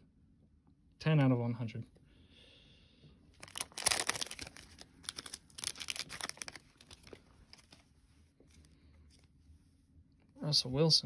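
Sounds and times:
foil wrapper tearing and crinkling: 0:03.4 - 0:07.8.

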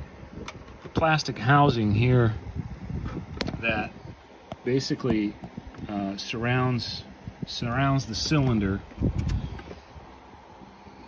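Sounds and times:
phone handling rumble: 0:00.0 - 0:05.9, 0:07.6 - 0:10.0
faint steady hum: 0:00.0 - 0:11.0.

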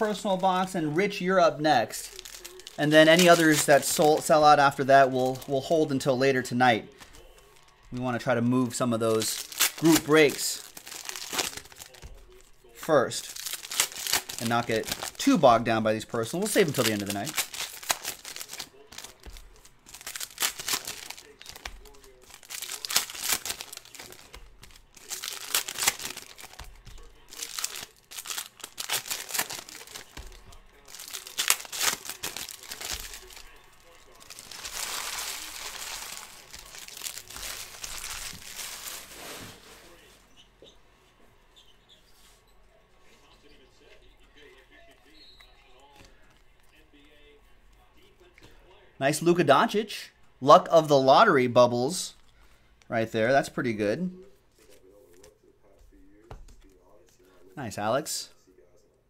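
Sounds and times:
plastic wrappers tearing and crinkling: 0:00.0 - 0:05.8, 0:06.9 - 0:12.5, 0:13.1 - 0:39.7.

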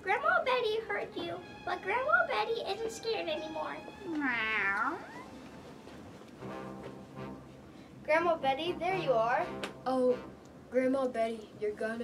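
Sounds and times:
child imitating cat meow: 0:04.1 - 0:05.3.

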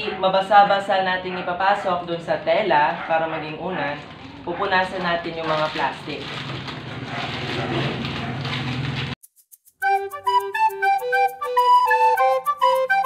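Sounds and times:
plastic wrappers rustling: 0:02.3 - 0:09.2
background music with flute: 0:09.6 - 0:13.0.

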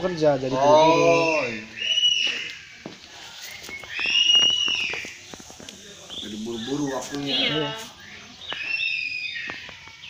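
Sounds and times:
bird whistling: 0:00.8 - 0:05.4, 0:06.1 - 0:10.0.

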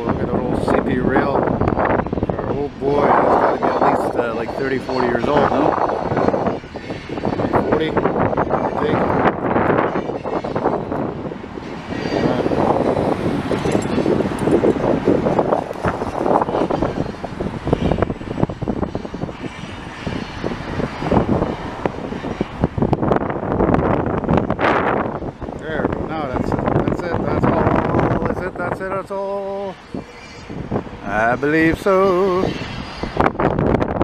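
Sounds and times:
road and wind noise inside car: 0:00.0 - 0:34.0.

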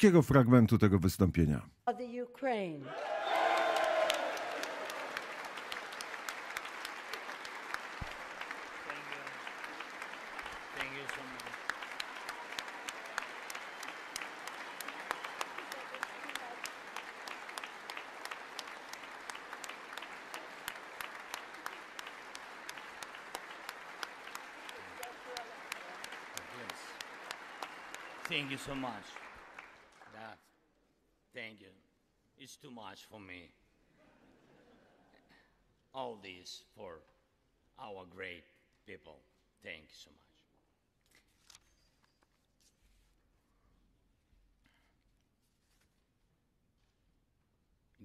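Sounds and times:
audience applause: 0:02.9 - 0:30.3.

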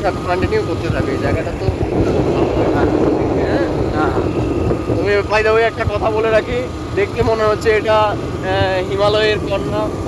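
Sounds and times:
motorcycle engine running: 0:00.0 - 0:10.0
wind buffeting microphone: 0:00.0 - 0:10.0.

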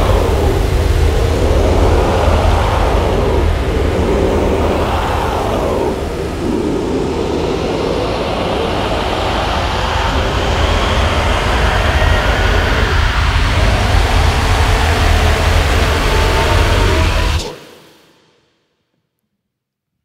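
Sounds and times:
deep rumble: 0:00.0 - 0:17.5
choir voices growling and rasping: 0:00.0 - 0:18.0.

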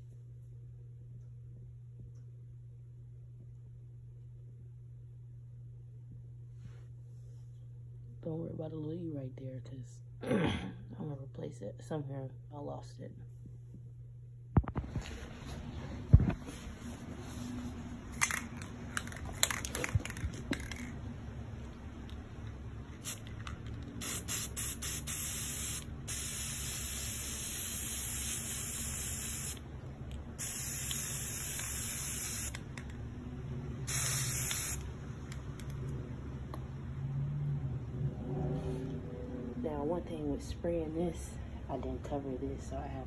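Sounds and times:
spray paint can hissing: 0:23.0 - 0:23.3, 0:24.0 - 0:29.6, 0:30.4 - 0:32.6, 0:33.9 - 0:34.9.

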